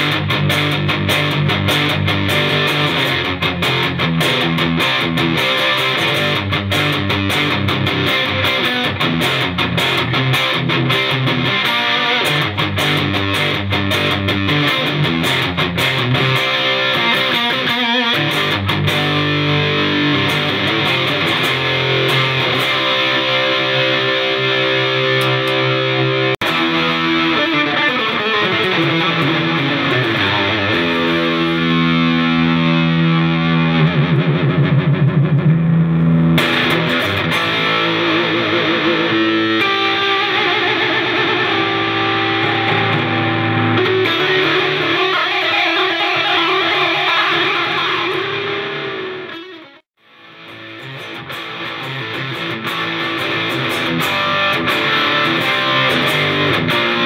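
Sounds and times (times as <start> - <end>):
distorted electric guitar: 0.0 - 57.0.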